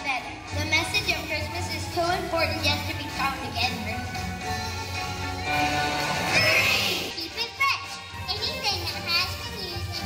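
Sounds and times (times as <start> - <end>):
music playing: 0.0 - 10.0
young children's voices: 6.3 - 10.0.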